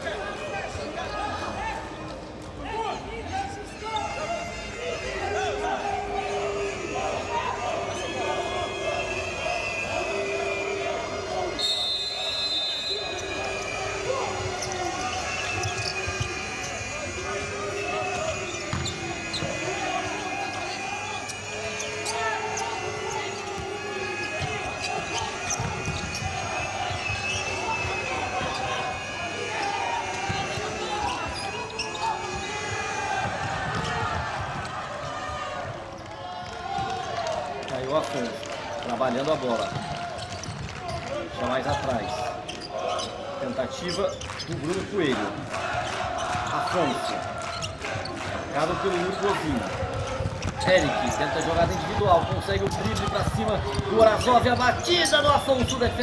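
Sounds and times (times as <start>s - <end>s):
voices calling in arena: 0.0s - 56.0s
short high whistle: 11.6s - 13.9s
ball kicked and bouncing on court: 18.7s - 19.6s, 24.4s - 26.4s, 33.2s - 35.8s, 39.5s - 41.3s, 49.9s - 54.7s.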